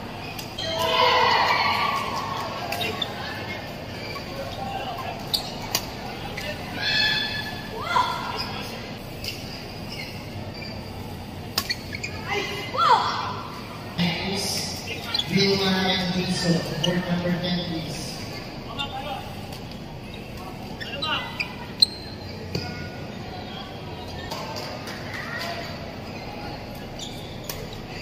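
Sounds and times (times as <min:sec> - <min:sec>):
echoing voices and chatter: 0:00.0 - 0:28.0
shoes squeaking on floor: 0:02.3 - 0:12.7, 0:14.6 - 0:17.4, 0:18.1 - 0:24.5, 0:25.1 - 0:28.0.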